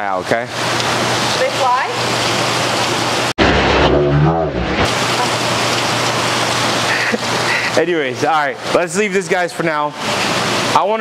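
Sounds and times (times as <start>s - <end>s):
water rushing: 0.5s - 11.0s.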